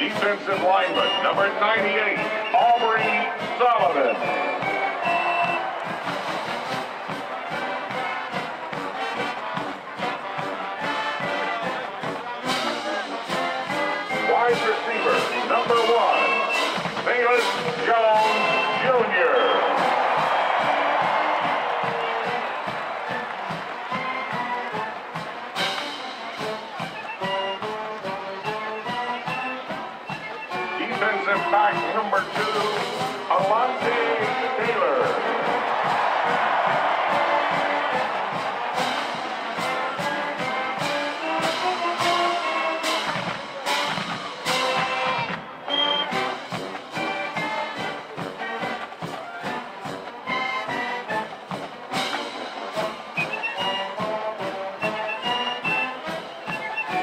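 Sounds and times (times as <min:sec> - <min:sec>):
marching band playing: 0:00.0 - 0:57.0.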